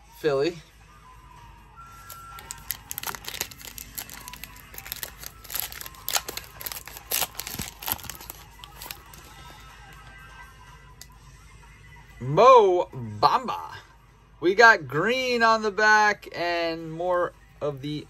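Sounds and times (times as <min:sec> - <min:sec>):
faint background music: 0:00.0 - 0:18.0
foil wrapper tearing and crinkling: 0:02.1 - 0:09.3.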